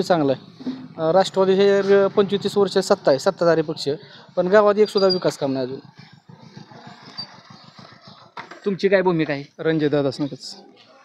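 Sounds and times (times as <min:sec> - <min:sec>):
faint engine running: 0:00.0 - 0:08.8.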